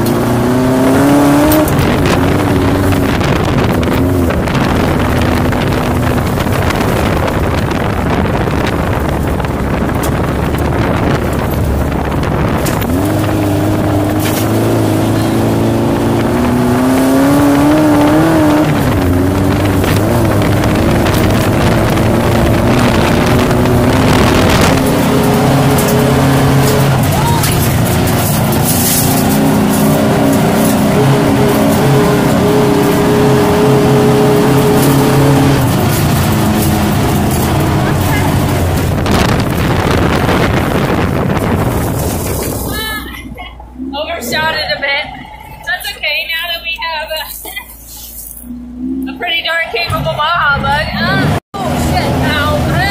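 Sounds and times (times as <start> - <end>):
car engine running under load: 0.0 - 52.9.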